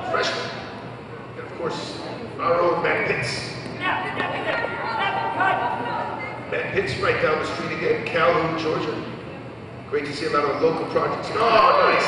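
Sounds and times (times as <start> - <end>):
voices echoing in a hall: 0.0 - 12.0
people shouting: 3.8 - 6.3.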